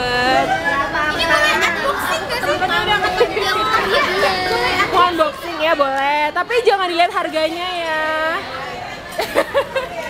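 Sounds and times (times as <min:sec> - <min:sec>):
group talking excitedly: 0:00.0 - 0:10.0.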